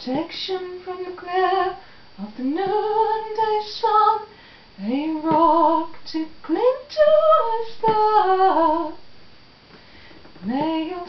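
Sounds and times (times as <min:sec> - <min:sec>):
woman singing unaccompanied: 0:00.0 - 0:09.1, 0:10.4 - 0:11.0.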